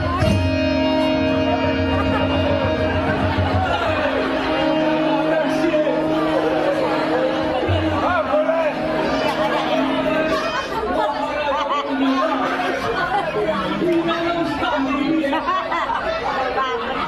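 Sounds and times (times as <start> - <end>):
chatter of voices: 0.0 - 17.0
sustained music tones: 0.1 - 13.6.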